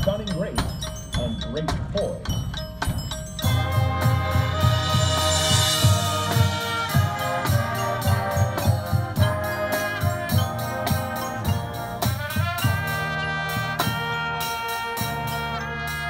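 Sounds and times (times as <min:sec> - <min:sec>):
marching drum hits: 0:02.9 - 0:14.2
brass chords: 0:03.4 - 0:16.0.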